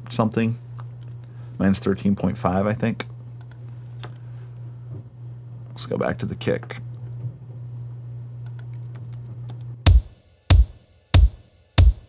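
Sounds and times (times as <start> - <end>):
low steady hum: 0.0 - 12.0
heavy kick drum hits: 9.9 - 12.0.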